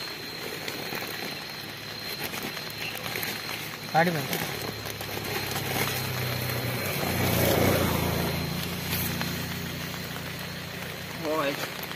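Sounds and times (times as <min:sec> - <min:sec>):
vehicle engine passing: 0:04.9 - 0:11.9.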